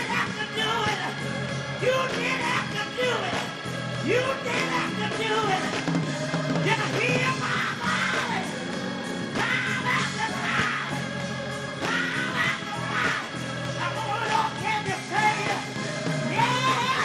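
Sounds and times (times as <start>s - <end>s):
gospel choir singing: 0.0s - 17.0s.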